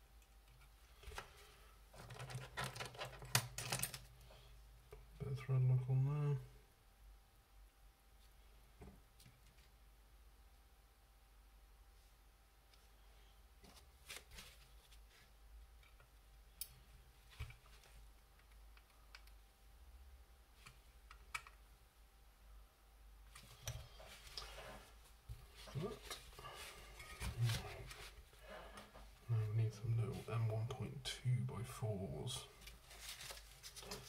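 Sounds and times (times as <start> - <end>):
person talking quietly: 5.2 - 6.5, 25.7 - 26.6, 29.2 - 32.6.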